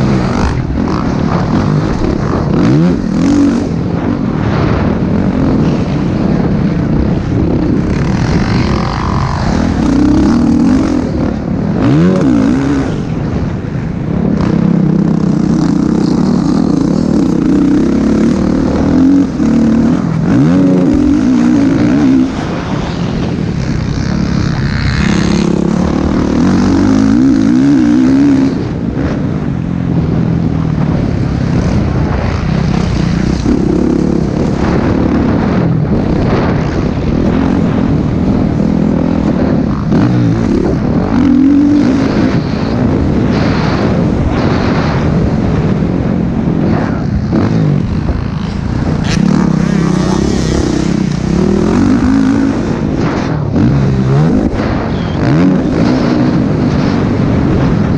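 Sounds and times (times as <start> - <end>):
dirt bike engine revving: 0.0 - 57.9.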